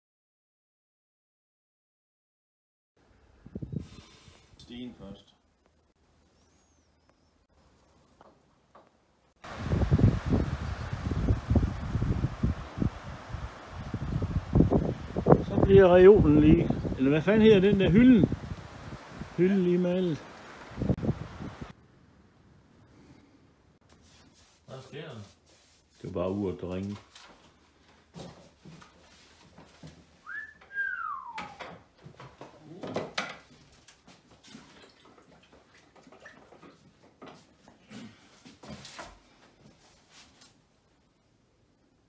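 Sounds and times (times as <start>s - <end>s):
wind buffeting microphone: 3.4s - 4.0s, 9.5s - 19.4s, 20.4s - 21.7s
person whistling: 30.2s - 31.6s.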